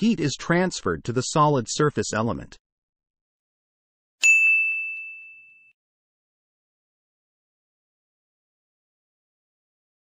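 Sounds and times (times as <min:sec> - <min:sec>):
bright chime ding: 0:04.2 - 0:05.8.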